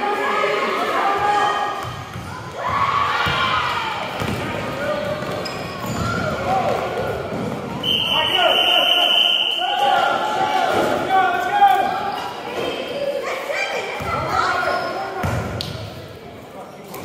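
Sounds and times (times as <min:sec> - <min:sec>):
basketball bouncing on wooden floor: 0:04.2 - 0:04.5
high steady whistle: 0:07.8 - 0:09.9.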